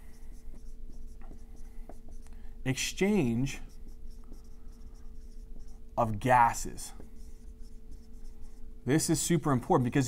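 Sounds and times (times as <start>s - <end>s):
marker writing on a whiteboard: 0.0s - 9.0s
faint electrical hum: 0.0s - 10.0s.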